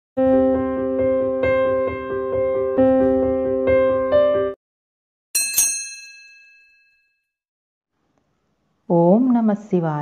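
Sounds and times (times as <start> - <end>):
bell-like ding chime: 5.4 - 7.3.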